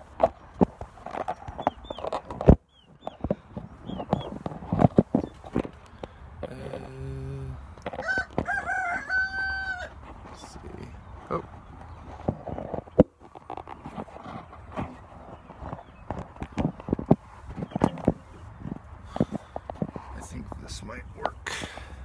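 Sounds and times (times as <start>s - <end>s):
rooster crowing: 7.9s - 10.0s.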